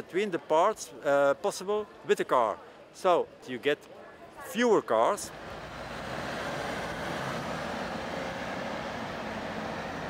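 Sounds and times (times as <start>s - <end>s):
cars driving past: 5.2s - 10.0s.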